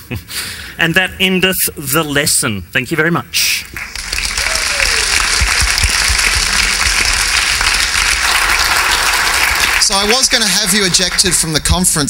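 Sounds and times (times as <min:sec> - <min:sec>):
audience applauding: 0:03.7 - 0:12.0.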